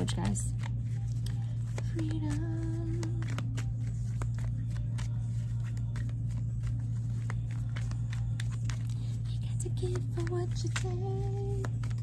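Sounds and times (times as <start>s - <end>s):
cards clicking and slapping: 0.0s - 9.2s, 9.8s - 12.0s
steady low hum: 0.0s - 12.0s.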